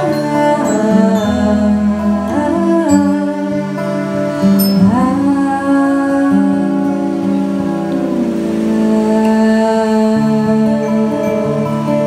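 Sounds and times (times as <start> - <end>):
acoustic guitar: 0.0 - 12.0
bowed cello long notes: 0.0 - 12.0.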